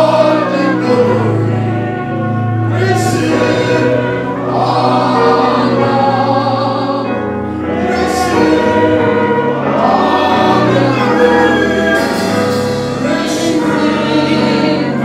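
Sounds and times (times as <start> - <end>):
group singing a gospel hymn: 0.0 - 15.0.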